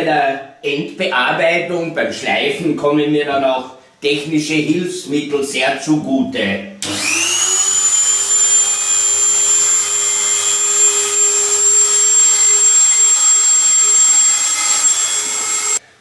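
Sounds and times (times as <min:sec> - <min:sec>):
rotary tool whining: 0:06.8 - 0:15.8.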